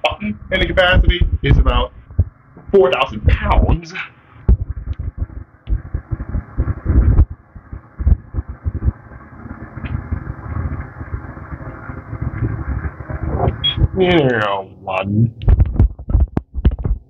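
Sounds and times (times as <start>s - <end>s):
heavy thumps: 0.0s - 3.8s, 4.4s - 11.4s, 15.2s - 17.0s
elevator running rumble: 0.0s - 16.6s.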